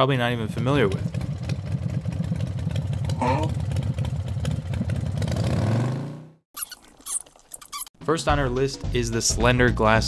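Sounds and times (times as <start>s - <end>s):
motorcycle engine revving: 0.4s - 6.4s.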